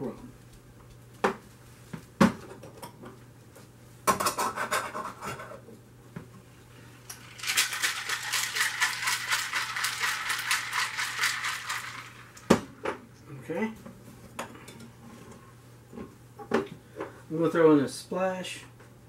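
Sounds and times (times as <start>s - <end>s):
ice rattling in cocktail shaker: 7.1s - 12.5s.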